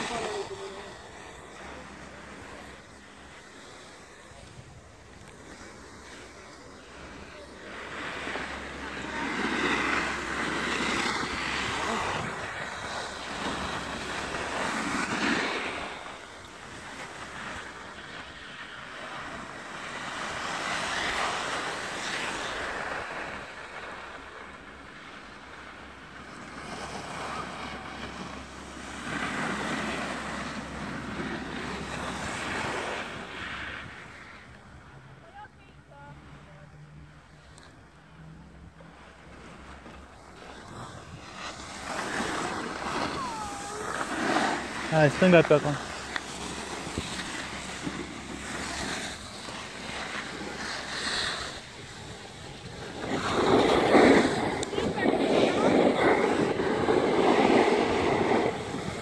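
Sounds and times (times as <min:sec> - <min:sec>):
snow hissing and scraping: 0:00.0 - 0:34.4, 0:39.2 - 0:59.0
wind buffeting microphone: 0:45.6 - 0:59.0.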